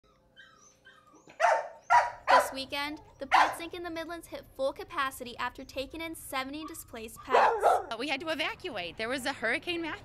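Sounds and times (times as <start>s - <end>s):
dogs whining: 0.0s - 3.6s, 6.6s - 8.0s
dog barking: 1.4s - 2.6s, 3.3s - 3.6s, 7.3s - 8.0s.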